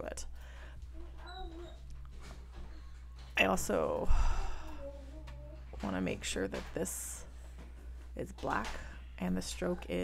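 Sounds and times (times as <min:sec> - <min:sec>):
dog whimpering: 0:01.1 - 0:01.9.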